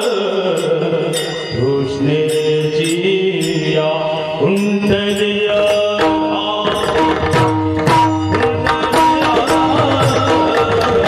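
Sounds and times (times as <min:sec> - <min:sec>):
devotional melody: 0:00.0 - 0:11.0
percussion strikes: 0:00.0 - 0:11.0.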